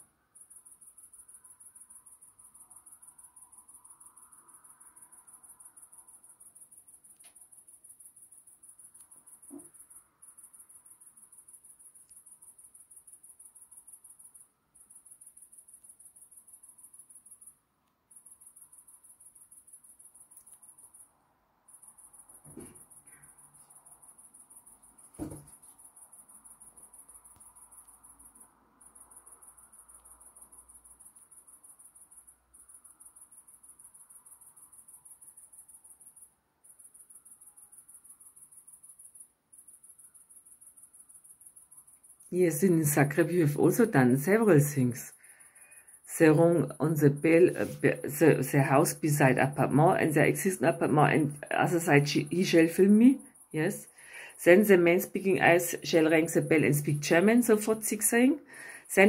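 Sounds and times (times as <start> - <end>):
crickets trilling: 0.0 - 59.0
soft knocks: 25.2 - 25.5.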